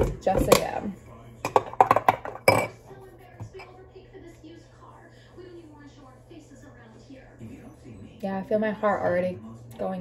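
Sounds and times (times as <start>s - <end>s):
metal spoon clinking in ceramic mug: 1.4s - 2.8s.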